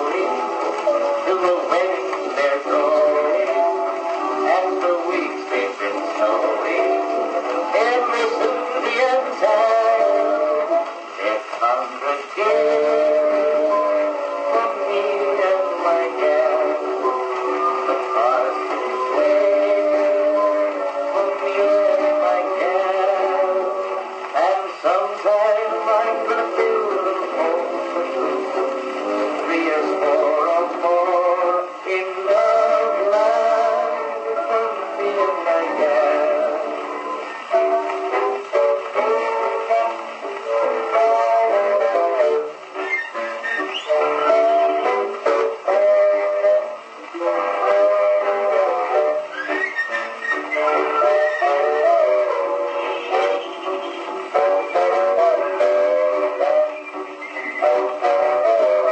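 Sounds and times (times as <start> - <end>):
man singing: 0.0 - 43.0, 43.6 - 49.6, 50.4 - 58.9
band playing: 0.0 - 58.9
old-time music from phonograph: 0.0 - 58.9.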